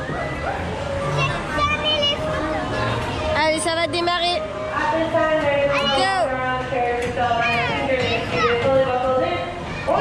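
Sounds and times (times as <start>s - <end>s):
carousel music: 0.0s - 10.0s
children's voices and calls: 0.2s - 4.4s, 5.0s - 6.5s, 7.2s - 10.0s.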